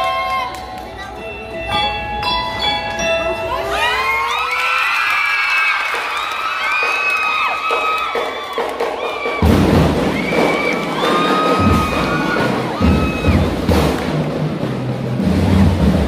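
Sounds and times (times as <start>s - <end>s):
crowd cheering and screaming: 0.0s - 0.8s, 3.5s - 13.8s
heavy drum hits: 8.8s - 16.0s.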